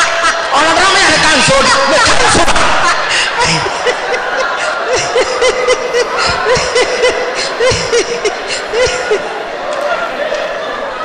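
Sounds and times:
audience laughter: 0:00.0 - 0:10.9
high-pitched pulsing laugh: 0:01.1 - 0:09.3.

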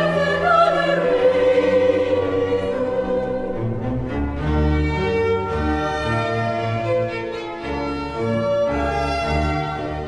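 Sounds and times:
operatic singing: 0:00.0 - 0:04.1
orchestra playing: 0:00.0 - 0:10.0.

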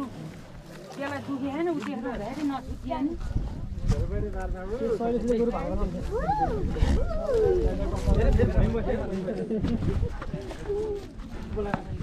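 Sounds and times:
onlookers' voices: 0:00.0 - 0:12.0.

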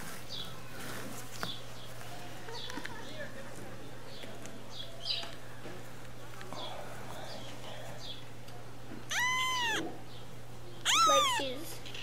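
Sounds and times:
kitten mewing: 0:09.1 - 0:09.9, 0:10.8 - 0:11.6.

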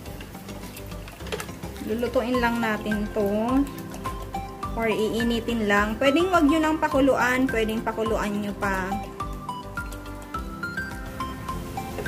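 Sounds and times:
whisk stirring liquid in pot: 0:00.0 - 0:10.2
bright background music: 0:00.0 - 0:12.0.

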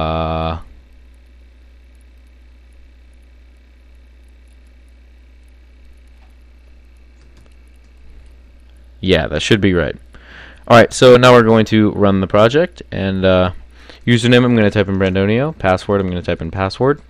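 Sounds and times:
low steady hum: 0:00.0 - 0:17.0
faint clicks: 0:00.8 - 0:08.8.

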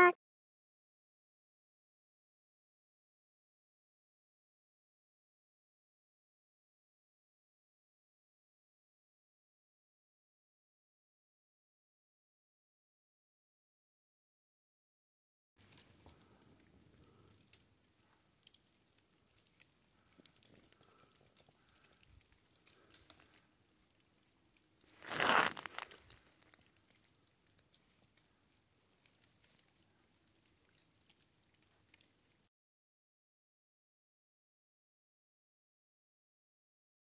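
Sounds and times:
light crackling and pattering: 0:15.6 - 0:32.5.

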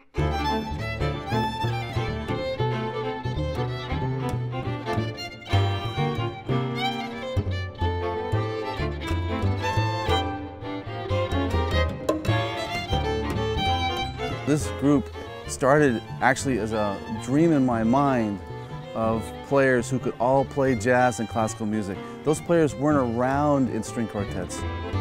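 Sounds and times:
cello bass line: 0:00.0 - 0:25.0
jazz string quartet playing: 0:00.0 - 0:25.0.

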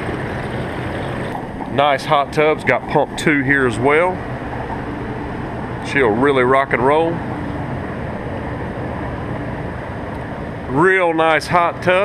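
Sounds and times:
hot tub water churning: 0:00.0 - 0:12.0.

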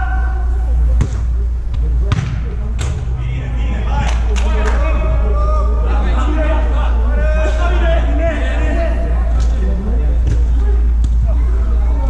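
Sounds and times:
players' voices: 0:00.0 - 0:12.0
steady low hum: 0:00.0 - 0:12.0
football kick thuds: 0:01.0 - 0:03.0.

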